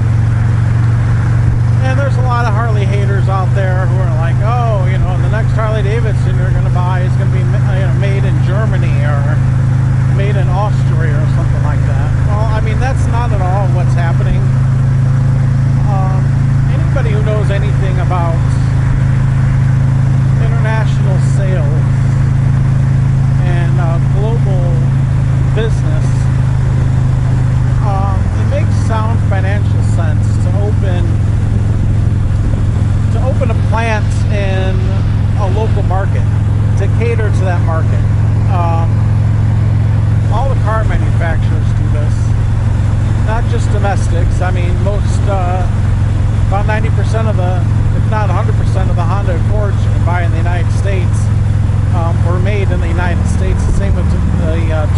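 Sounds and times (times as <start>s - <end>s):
motorcycle engine and wind drone: 0.0s - 54.9s
man talking: 1.8s - 14.6s, 15.8s - 18.8s, 20.2s - 22.0s, 23.3s - 26.4s, 27.8s - 31.4s, 33.0s - 39.1s, 40.2s - 42.4s, 43.2s - 51.3s, 51.9s - 54.9s.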